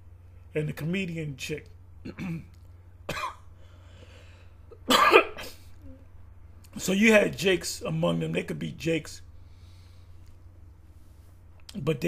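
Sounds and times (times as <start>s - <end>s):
steady low hum: 0.0s - 12.0s
man coughing: 2.1s - 3.5s, 4.7s - 5.8s.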